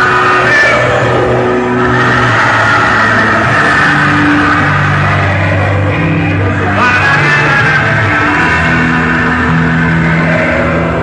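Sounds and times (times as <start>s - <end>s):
held bass notes: 0.0s - 11.0s
loud music through speakers: 0.0s - 11.0s.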